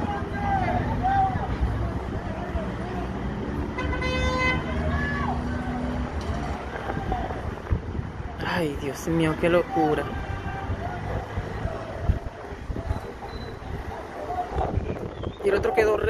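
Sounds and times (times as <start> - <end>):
distant voices calling out: 0.0 - 16.0
vehicle horn honk: 3.8 - 4.8.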